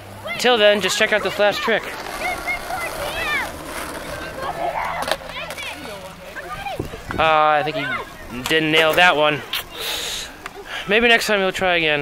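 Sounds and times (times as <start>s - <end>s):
skateboard clack: 0.0s - 9.7s
distant voices shouting: 0.0s - 12.0s
skateboard rolling on concrete: 0.0s - 12.0s.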